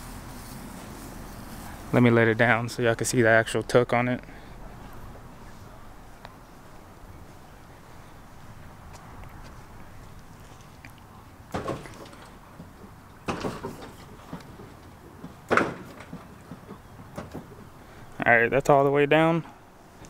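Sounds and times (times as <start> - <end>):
hydraulic suspension clunks: 11.5 - 18.1.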